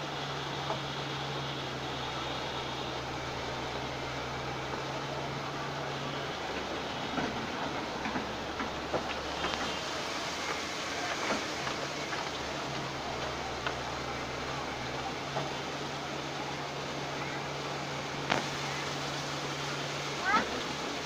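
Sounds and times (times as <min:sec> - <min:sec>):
excavator diesel engine droning: 0:00.0 - 0:21.0
road traffic: 0:00.0 - 0:21.0
excavator clanks and knocks: 0:06.6 - 0:09.9.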